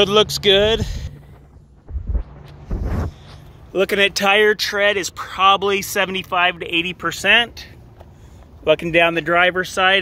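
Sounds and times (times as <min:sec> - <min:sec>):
muffled buffets on microphone: 0:00.5 - 0:04.1.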